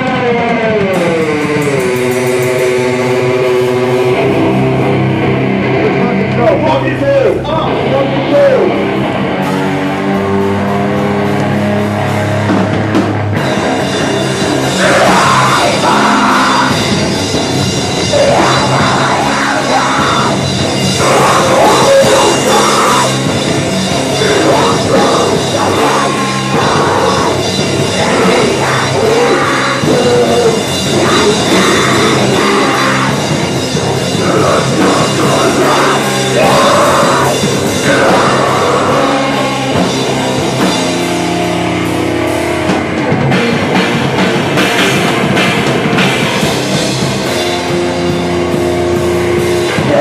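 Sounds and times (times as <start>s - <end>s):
distorted electric guitar: 0.0s - 50.0s
drum kit: 0.0s - 50.0s.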